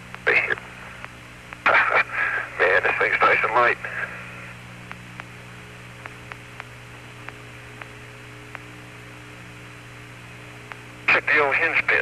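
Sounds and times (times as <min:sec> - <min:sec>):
radio electrical hum and hiss: 0:00.0 - 0:12.0
faint irregular clicks: 0:00.1 - 0:01.6, 0:04.8 - 0:05.4, 0:06.0 - 0:08.7, 0:10.6 - 0:10.9.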